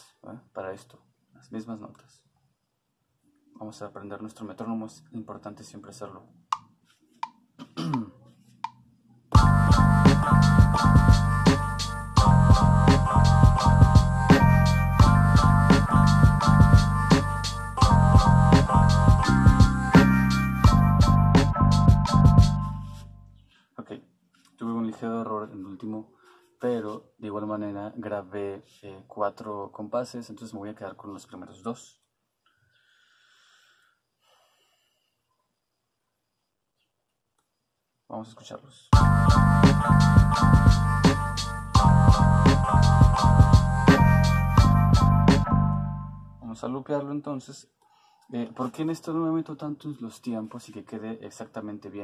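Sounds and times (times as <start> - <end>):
drum and bass beat: 9.4 - 23.0, 39.0 - 45.6
faint breathing: 26.1 - 26.6, 32.5 - 35.2, 47.8 - 48.4.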